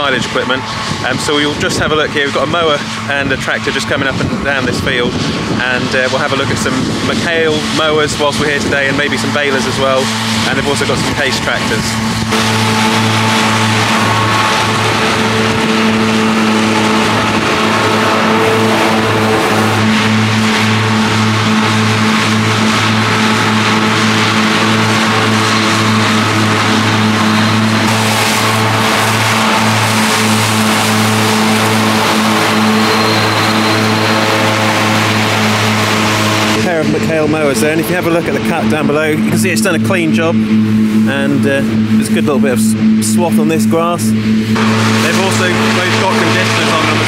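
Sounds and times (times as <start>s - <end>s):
tractor machine hum: 0.0s - 47.0s.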